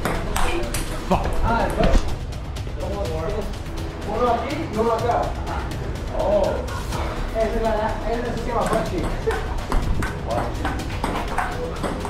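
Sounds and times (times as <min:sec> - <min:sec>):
background music: 0:00.0 - 0:12.0
ping pong ball clicking: 0:08.6 - 0:12.0.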